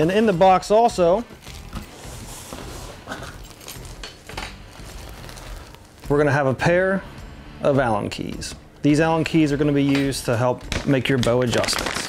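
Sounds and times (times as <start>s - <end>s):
plastic packaging handling: 0.0s - 6.2s, 10.7s - 12.0s.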